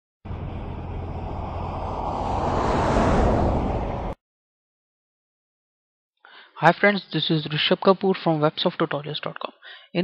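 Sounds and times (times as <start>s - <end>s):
low rumbling: 0.2s - 4.2s.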